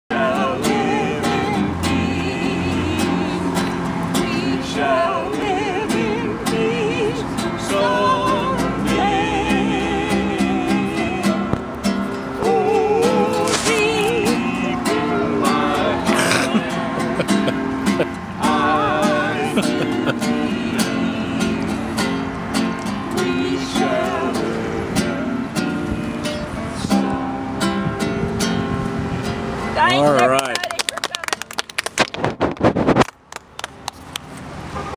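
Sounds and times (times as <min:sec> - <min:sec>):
acoustic guitar strumming chords: 0:00.1 - 0:30.4
man singing: 0:04.2 - 0:11.4, 0:12.4 - 0:17.4, 0:18.4 - 0:21.8.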